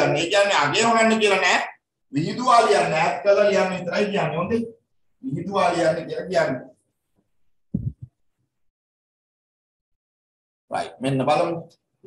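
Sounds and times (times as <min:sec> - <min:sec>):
low thumps: 0:07.7 - 0:08.2.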